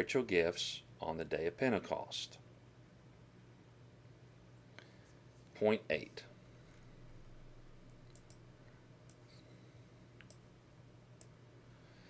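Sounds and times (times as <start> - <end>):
faint steady hum: 0.0 - 12.0
soft clicks: 6.8 - 9.4, 10.2 - 10.5, 11.2 - 11.4.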